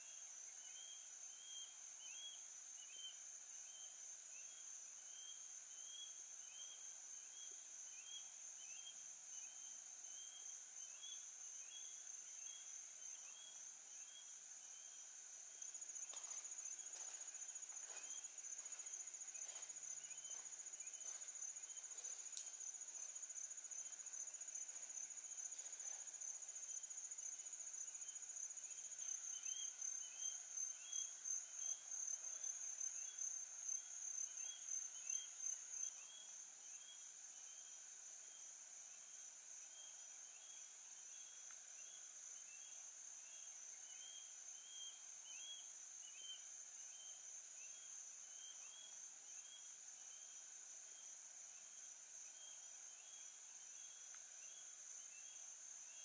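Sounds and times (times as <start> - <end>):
insect chirping: 0.0 - 56.0
insect drone: 0.0 - 56.0.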